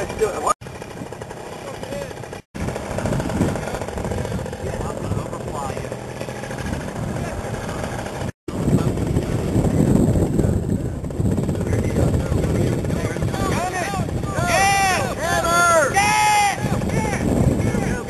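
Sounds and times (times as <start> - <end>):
paramotor engine drone: 0.0 - 18.0.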